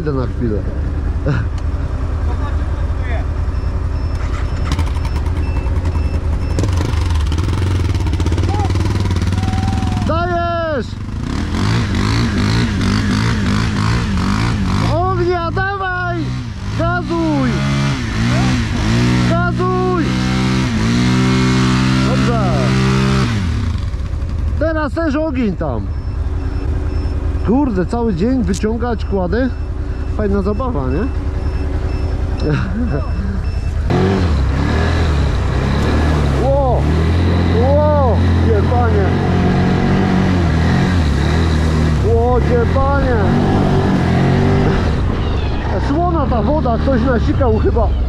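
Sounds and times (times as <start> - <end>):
atv engines running: 0.0 - 48.0
people shouting: 8.4 - 10.6, 18.2 - 18.6.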